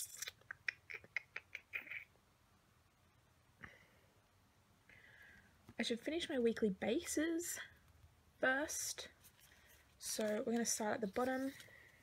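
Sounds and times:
paper rustles: 9.2 - 12.0.

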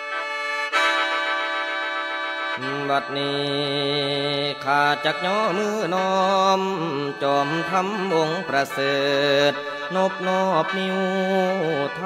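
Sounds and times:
person chanting to music: 2.6 - 12.0.

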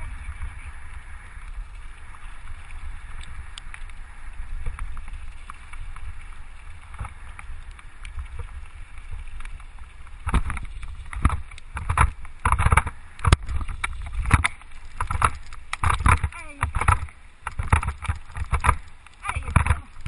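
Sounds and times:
bike rattling over bumps: 0.0 - 20.0
bike tyres rumbling on gravel: 0.0 - 20.0
wind: 0.0 - 20.0.

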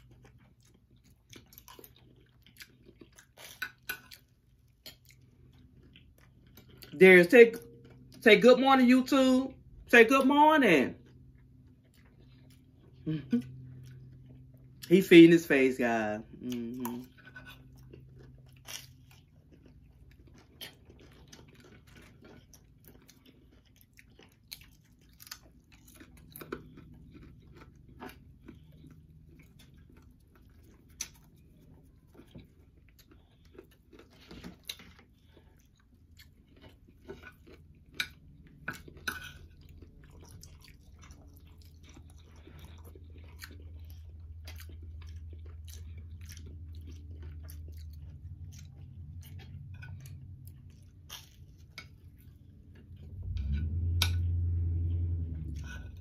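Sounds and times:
chewing and crunching food: 0.0 - 56.0
low hum: 42.2 - 56.0.

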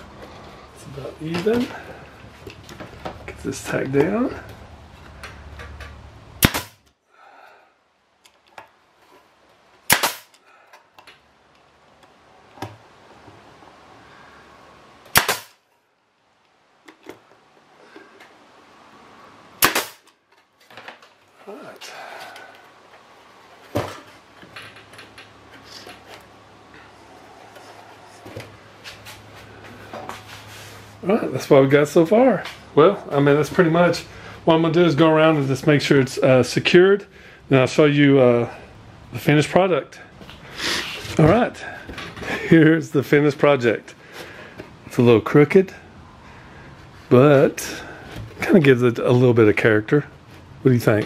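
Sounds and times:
nail gun shots: 6.4 - 6.8, 9.9 - 10.4, 15.1 - 15.6, 19.6 - 20.1.

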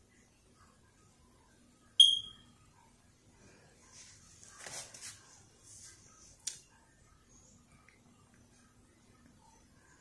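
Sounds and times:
high-pitched ping: 2.0 - 2.4.

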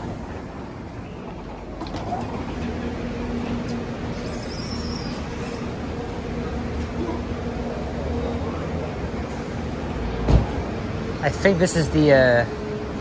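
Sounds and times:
road traffic: 0.0 - 13.0.

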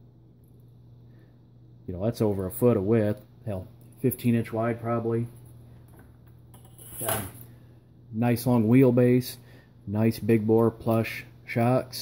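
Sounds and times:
man breathing in: 9.4 - 9.8.

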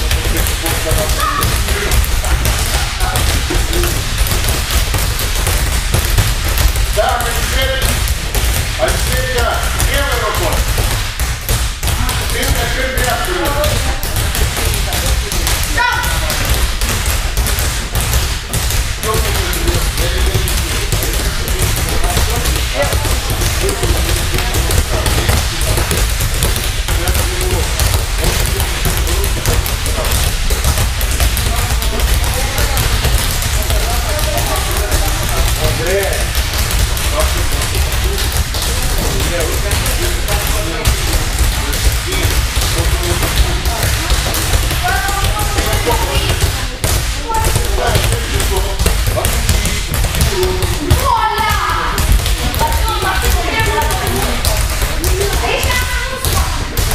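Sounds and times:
rubber balls bouncing on mats: 0.0 - 56.9.

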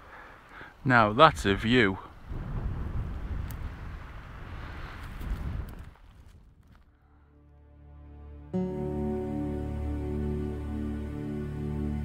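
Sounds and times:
wind buffeting microphone: 1.2 - 6.9
soft background music: 7.4 - 12.0.

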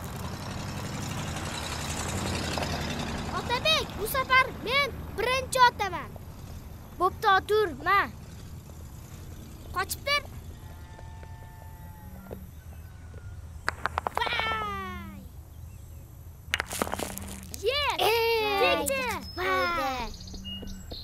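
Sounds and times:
children shouting: 14.2 - 15.3, 17.6 - 20.2.

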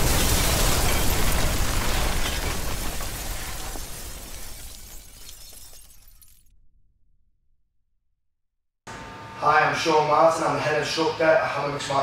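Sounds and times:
debris crumbling and scattering: 0.0 - 6.6
something shattering: 0.0 - 6.6.

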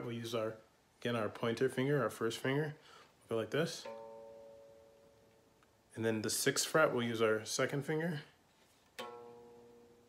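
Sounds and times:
guitar note ringing: 3.6 - 5.8, 9.0 - 10.0.

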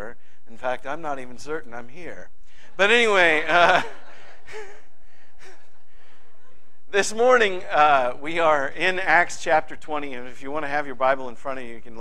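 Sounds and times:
steady room hiss: 0.0 - 12.0
soft breathy chuckles: 3.8 - 6.6.

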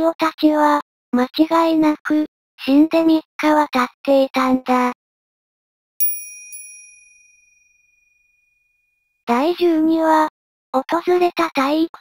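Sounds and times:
high metallic bell chime: 6.0 - 8.5.

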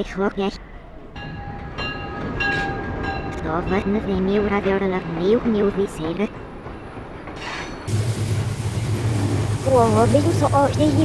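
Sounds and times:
train rumble: 1.0 - 11.0.

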